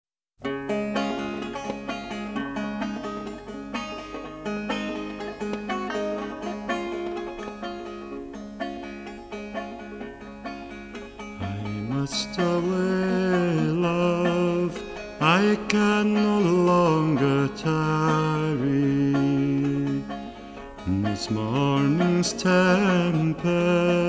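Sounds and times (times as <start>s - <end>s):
plucked string instrument: 0.4s - 24.0s
man singing: 11.4s - 20.2s, 20.8s - 24.0s.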